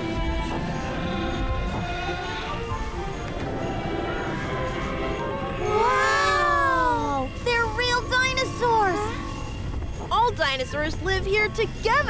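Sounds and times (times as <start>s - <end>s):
children saying wow: 5.6s - 7.3s.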